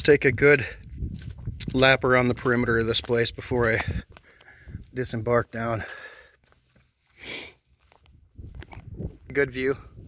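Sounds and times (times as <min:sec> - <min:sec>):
wind rumble on microphone: 0:00.0 - 0:05.0, 0:08.0 - 0:10.0
breathy puff: 0:07.1 - 0:07.6.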